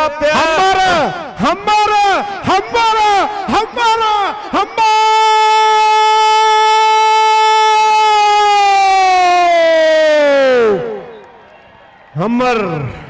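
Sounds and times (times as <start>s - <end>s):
man shouting a long note: 0.3s - 11.1s.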